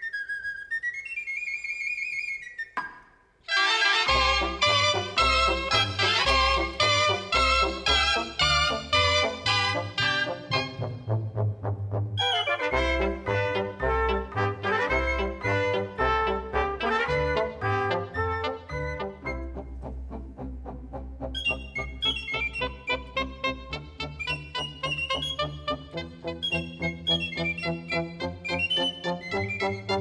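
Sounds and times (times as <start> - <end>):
brass and reed melody: 3.4 - 30.0
wind band playing: 3.5 - 30.0.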